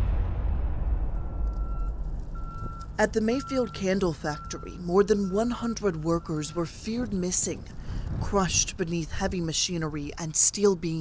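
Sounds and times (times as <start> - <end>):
deep low rumble: 0.0 - 3.8
vehicle reversing beeper: 1.2 - 6.9.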